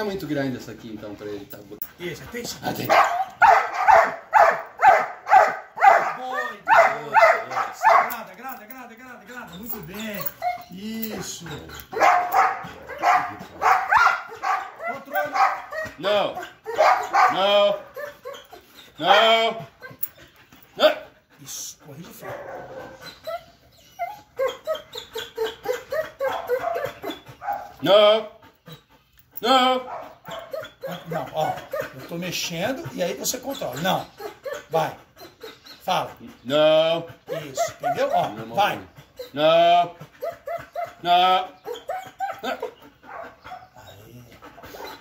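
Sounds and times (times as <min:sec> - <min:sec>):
dog whining: 0:02.8 - 0:20.7, 0:22.1 - 0:27.8, 0:28.5 - 0:35.9, 0:37.2 - 0:39.5, 0:40.1 - 0:45.0
dog barking sharply: 0:02.9 - 0:08.1, 0:12.0 - 0:15.6, 0:16.8 - 0:17.4.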